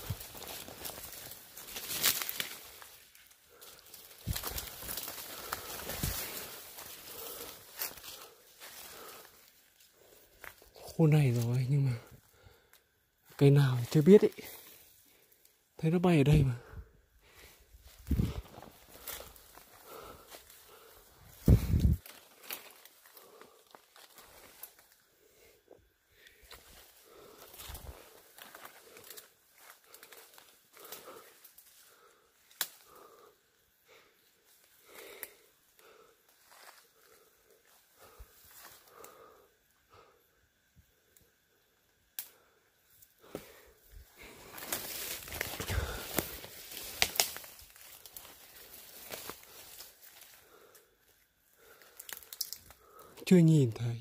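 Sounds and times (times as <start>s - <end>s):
footsteps crunching on dry leaves: 0.0s - 9.5s, 43.4s - 50.4s
rustling through undergrowth: 0.0s - 39.5s, 42.3s - 53.7s.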